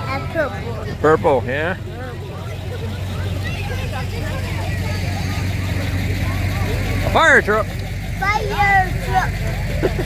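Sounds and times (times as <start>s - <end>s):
crowd chatter: 0.0s - 10.0s
fire truck engine rumbling: 0.0s - 10.0s.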